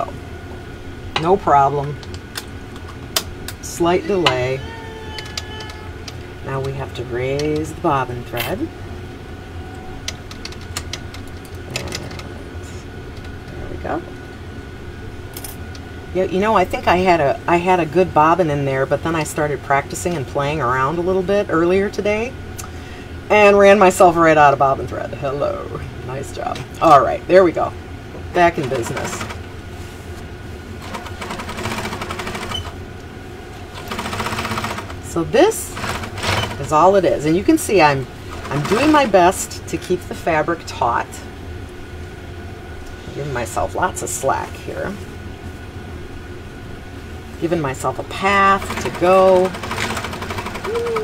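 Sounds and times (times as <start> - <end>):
steady low hum: 0.0 - 51.0
sewing machine clicking: 33.8 - 34.9, 35.8 - 36.6, 48.6 - 51.0.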